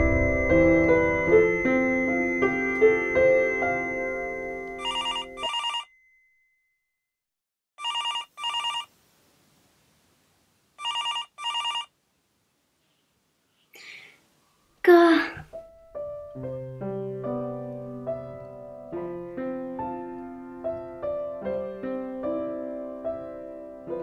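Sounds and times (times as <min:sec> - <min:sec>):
soft piano music: 0:00.0 - 0:05.4, 0:15.1 - 0:24.0
telephone ringing: 0:02.2 - 0:06.2, 0:07.8 - 0:08.9, 0:10.8 - 0:11.9.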